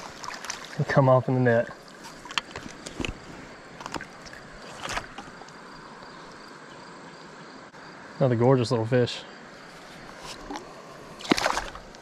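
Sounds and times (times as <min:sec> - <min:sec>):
splashes and knocks: 0:00.0 - 0:01.0, 0:03.8 - 0:05.5, 0:11.2 - 0:12.0.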